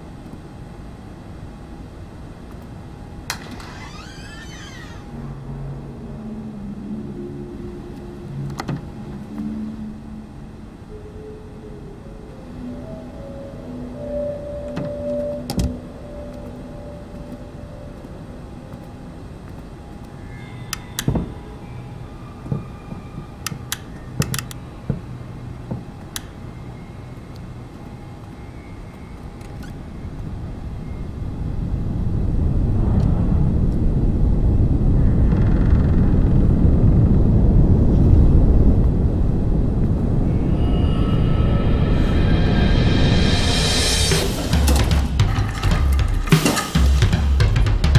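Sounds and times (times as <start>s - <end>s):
eerie low drone tones: 2.9s - 47.9s.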